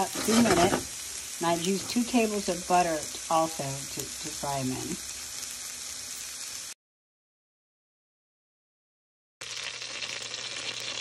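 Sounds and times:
vegetables sizzling in butter: 0.0s - 6.8s, 9.4s - 11.0s.

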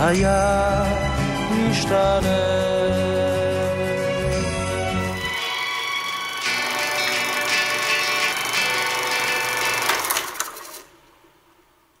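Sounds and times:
film closing music: 0.0s - 10.9s.

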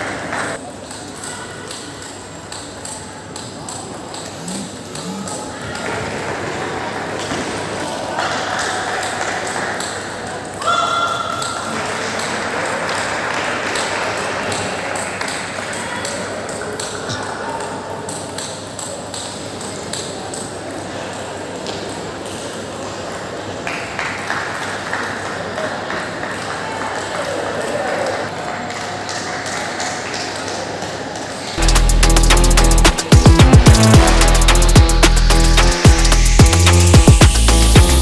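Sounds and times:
murmur of voices: 0.0s - 37.0s.

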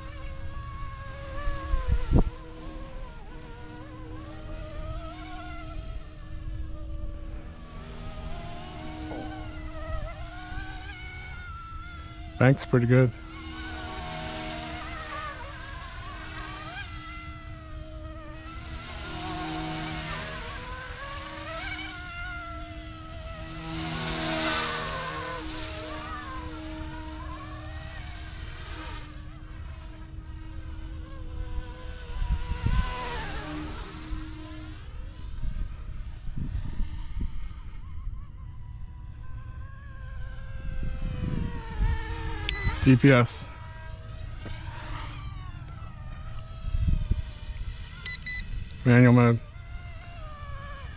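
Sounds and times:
wind rumble on microphone: 0.0s - 12.7s, 24.7s - 48.8s
rc helicopter motor whine: 0.0s - 50.9s.

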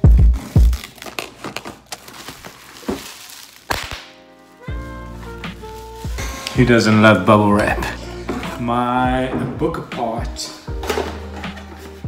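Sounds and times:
bubble wrap snap: 0.4s - 6.6s
bubble wrap being handled: 0.4s - 7.3s
background music: 3.0s - 12.0s.

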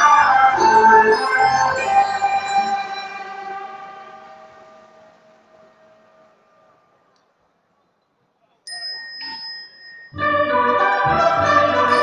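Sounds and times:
high steady tone: 0.0s - 7.2s
held chanting tones: 0.0s - 7.6s, 8.7s - 12.0s.

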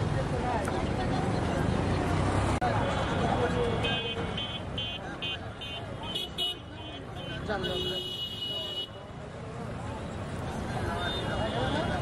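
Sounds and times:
market crowd voices: 0.0s - 12.0s.

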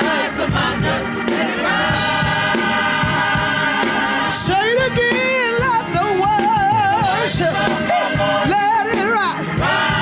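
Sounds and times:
gospel choir singing: 0.0s - 10.0s
instrumental accompaniment with beat: 0.0s - 10.0s.

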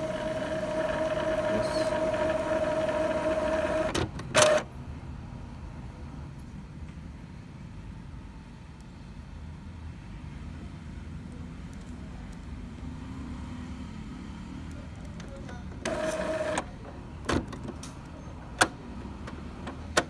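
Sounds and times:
printhead carriage moving: 0.0s - 4.6s, 15.8s - 16.7s
printer motor whine: 0.0s - 4.7s, 15.8s - 16.7s.

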